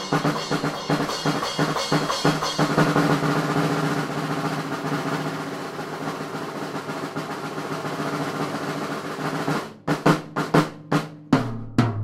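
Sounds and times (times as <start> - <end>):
drum kit roll: 0.0 - 12.0.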